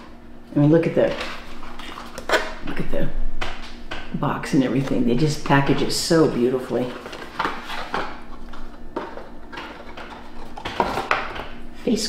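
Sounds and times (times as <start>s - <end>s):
cardboard and tissue paper rustling: 1.0s - 2.6s, 6.2s - 11.1s.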